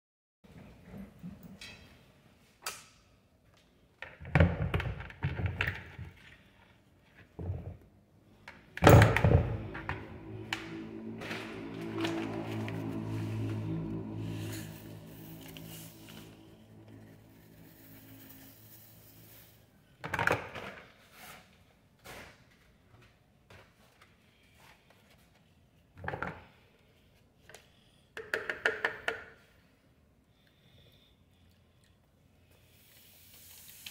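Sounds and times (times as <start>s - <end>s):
granular powder pouring: 14.2s - 19.8s.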